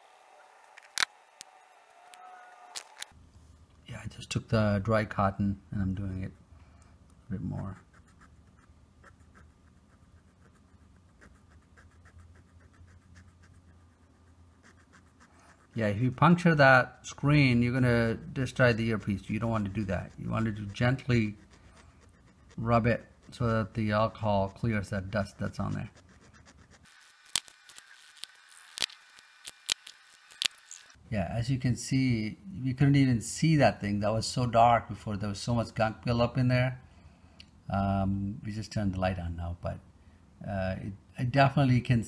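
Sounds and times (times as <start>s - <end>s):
cotton scratching on phone grille: 7.7s - 15.8s, 18.4s - 30.9s.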